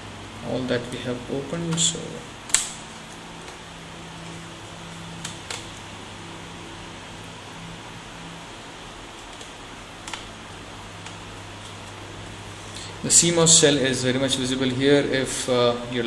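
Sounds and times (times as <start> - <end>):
room hum and hiss: 0.0 - 16.0.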